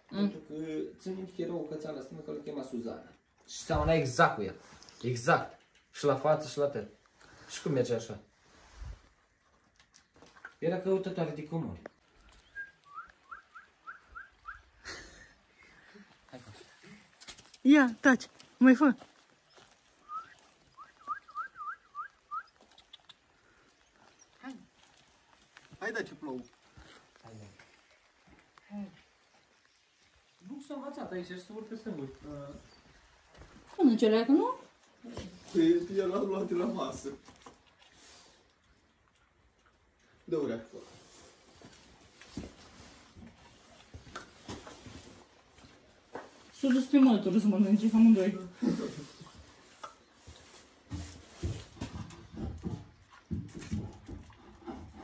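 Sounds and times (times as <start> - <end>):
puppies scuffling on concrete: 7.2 - 14.9, 16.0 - 55.0
person whistling: 12.5 - 14.6, 20.0 - 22.5.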